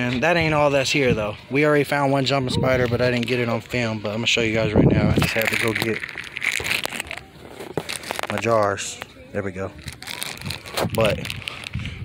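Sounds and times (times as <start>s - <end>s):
plastic bag crinkling: 5.0s - 9.0s, 9.6s - 11.9s.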